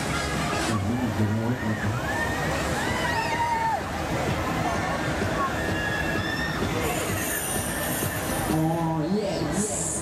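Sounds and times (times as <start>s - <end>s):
fairground ride machinery squealing: 4.5s - 8.7s
high hiss: 6.8s - 8.7s.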